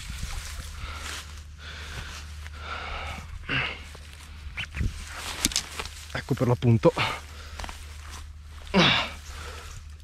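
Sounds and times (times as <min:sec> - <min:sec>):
man breathing hard: 0:00.0 - 0:04.6, 0:07.0 - 0:08.0, 0:08.6 - 0:10.0
man grunting: 0:08.7 - 0:09.2.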